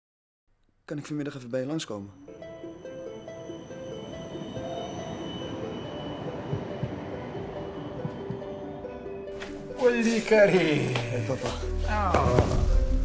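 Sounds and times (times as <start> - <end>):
soundtrack music with held notes: 2.1 - 13.0
tram rumbling on rails: 2.4 - 9.3.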